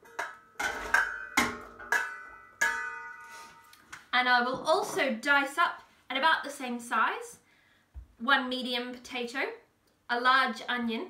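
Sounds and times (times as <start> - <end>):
metal cookware clanking: 0.0 - 3.8.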